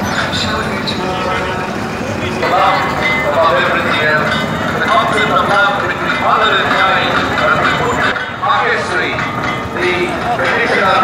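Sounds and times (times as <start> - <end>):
trucks rumbling past: 0.0 - 11.0.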